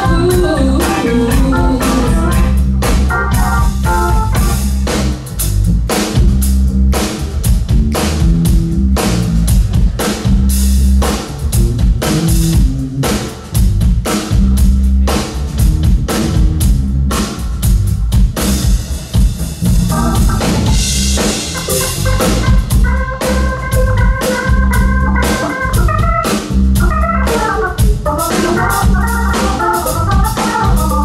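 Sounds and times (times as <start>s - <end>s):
drum kit steady beat: 0.0s - 31.0s
live band playing: 0.0s - 31.0s.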